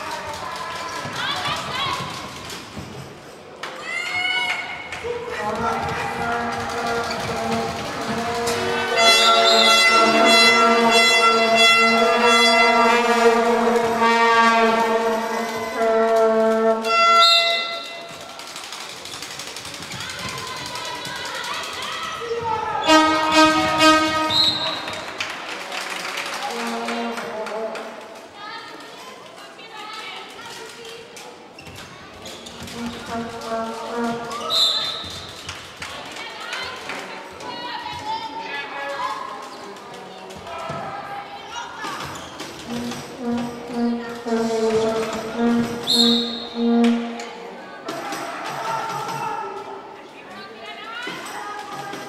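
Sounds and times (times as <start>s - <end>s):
voices in a large hall: 0.0s - 52.0s
horns blowing long held notes: 5.3s - 18.2s, 22.8s - 25.1s, 26.4s - 28.2s, 32.7s - 35.2s, 42.6s - 47.6s.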